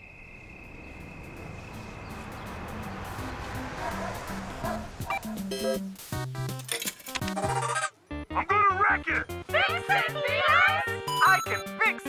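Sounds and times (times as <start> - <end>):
eight-bit arcade game music: 5.1 - 6.6, 7.2 - 12.0
man speaking: 8.3 - 9.4.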